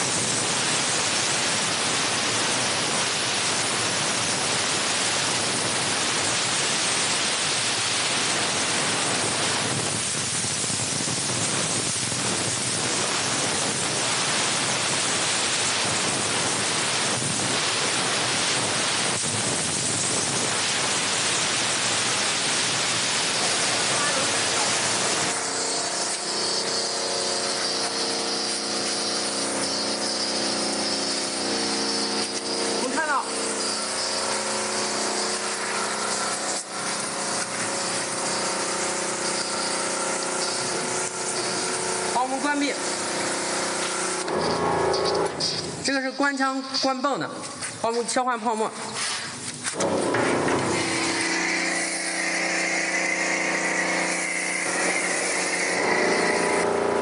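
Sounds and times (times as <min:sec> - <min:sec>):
water pump humming: 0:00.0 - 0:47.9, 0:49.3 - 0:57.0
steam jet hissing: 0:00.0 - 0:57.0
water jet spraying: 0:00.0 - 0:57.0.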